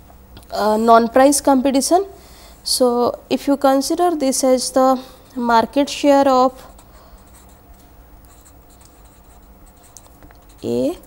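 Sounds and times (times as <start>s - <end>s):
marker pen scratching on paper: 6.6s - 11.0s.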